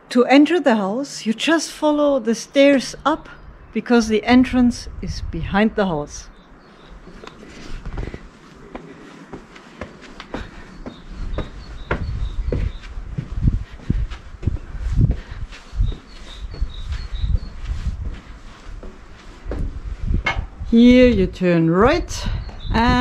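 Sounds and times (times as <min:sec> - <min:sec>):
footsteps on stone steps: 0:07.0 - 0:20.7.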